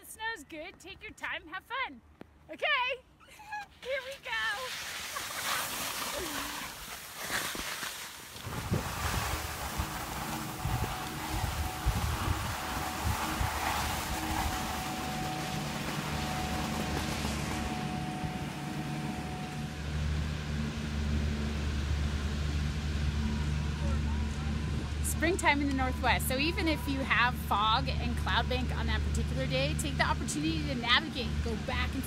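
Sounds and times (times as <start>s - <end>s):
skis scraping over snow: 3.9s - 19.6s
low mechanical hum: 7.8s - 32.0s
wind on microphone: 8.4s - 18.6s.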